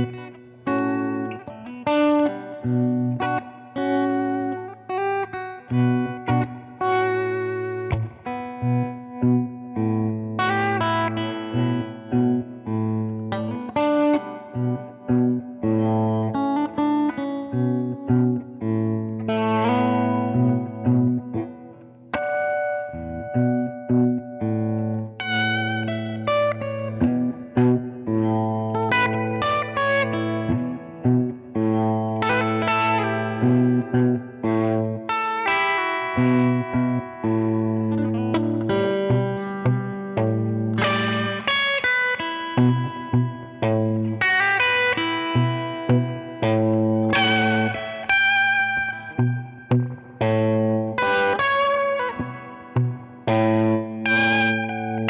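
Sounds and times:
electric guitar through amplifier: 0:00.0 - 0:55.0.

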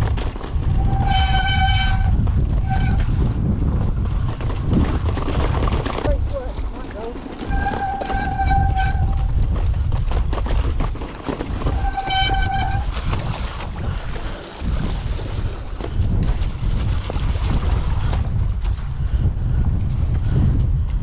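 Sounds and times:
mountain bike rattling over stones: 0:00.0 - 0:18.9
wind buffeting microphone: 0:00.0 - 0:21.0
high-pitched squeals: 0:07.3 - 0:09.3, 0:11.6 - 0:12.9.

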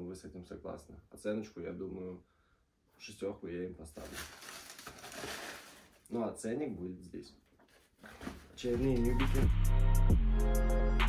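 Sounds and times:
tissue paper rustling: 0:04.0 - 0:06.2, 0:07.6 - 0:09.0.

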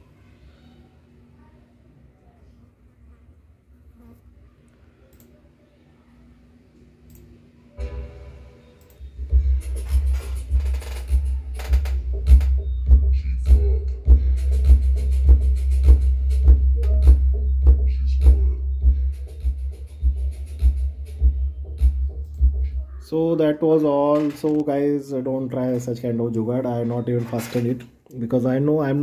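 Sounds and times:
bass-heavy music through subwoofer: 0:09.2 - 0:22.9.

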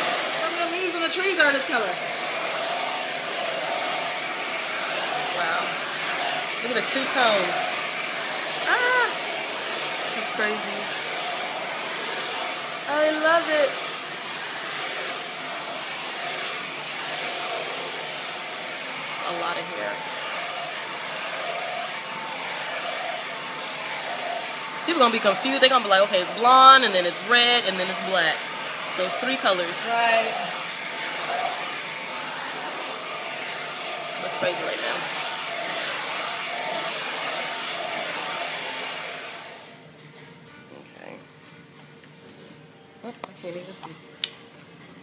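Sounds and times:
hair dryer running: 0:00.0 - 0:39.9.

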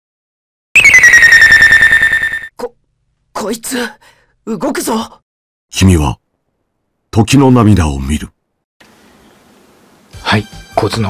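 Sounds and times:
pulsing electronic alarm beep: 0:00.8 - 0:02.5.

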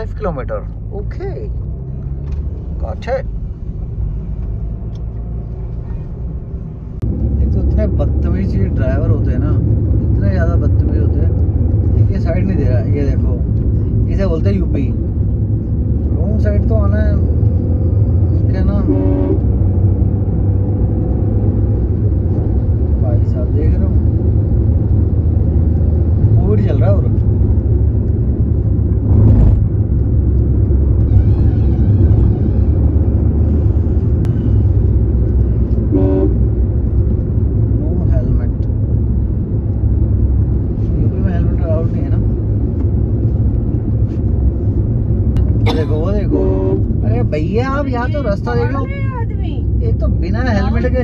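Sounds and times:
engine and tyre rumble in car: 0:00.0 - 0:51.0
vehicle horn honks: 0:18.8 - 0:19.4, 0:35.9 - 0:36.4, 0:45.7 - 0:46.9.

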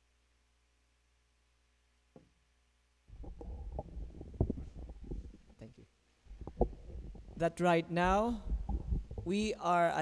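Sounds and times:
dull microphone knocks: 0:03.1 - 0:05.6, 0:06.3 - 0:07.4, 0:08.0 - 0:09.5
microphone handling rumble: 0:03.1 - 0:09.6.

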